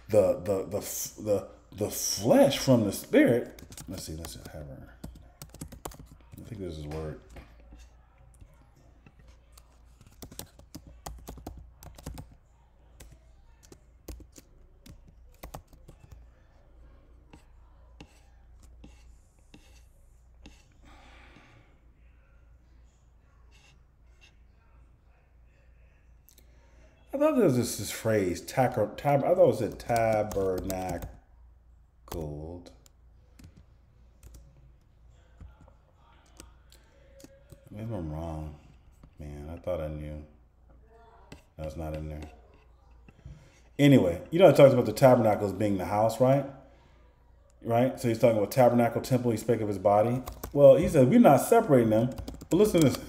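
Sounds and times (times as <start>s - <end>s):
low room hum: 0.0s - 53.0s
typing on computer keyboard: 3.4s - 6.4s, 9.2s - 12.4s, 13.0s - 16.2s, 29.7s - 31.2s, 50.2s - 51.0s, 52.0s - 53.0s.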